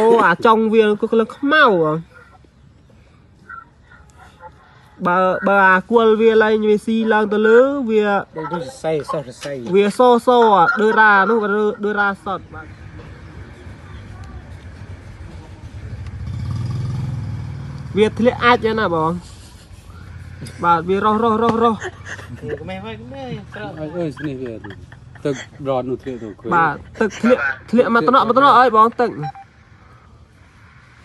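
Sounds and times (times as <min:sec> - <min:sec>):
low engine rumble: 0:09.9 - 0:31.0.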